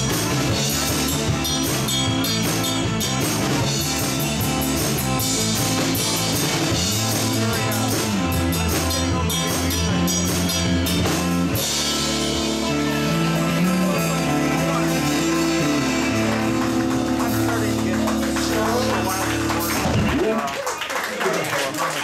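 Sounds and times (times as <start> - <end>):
drum kit with cymbals: 0.0 - 20.2
electric bass guitar: 0.0 - 20.4
electric guitar: 0.0 - 20.4.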